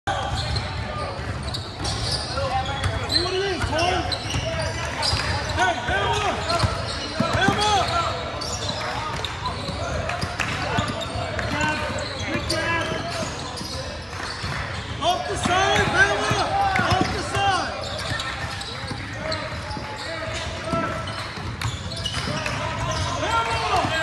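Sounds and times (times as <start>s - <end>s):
sneakers squeaking: 0.1s - 24.0s.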